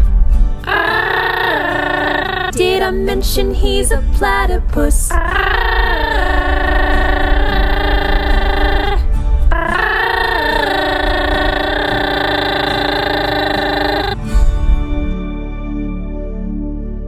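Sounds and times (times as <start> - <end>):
woman singing held notes: 0.7 - 9.0.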